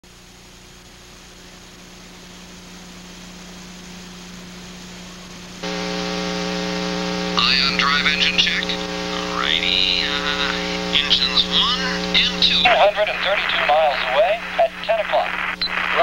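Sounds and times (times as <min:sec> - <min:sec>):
buzzing drone: 0:00.1 - 0:16.0
low hum with hiss: 0:00.1 - 0:16.0.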